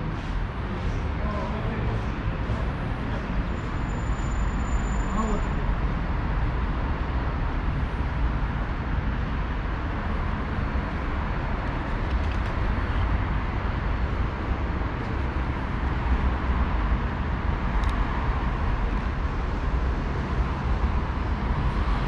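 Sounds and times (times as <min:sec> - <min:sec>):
city traffic rumble: 0:00.0 - 0:22.0.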